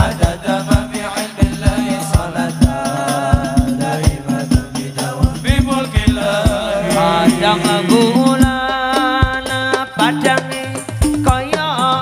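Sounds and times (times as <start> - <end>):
hand drum percussion: 0.0 - 12.0
men singing devotional song: 0.0 - 12.0.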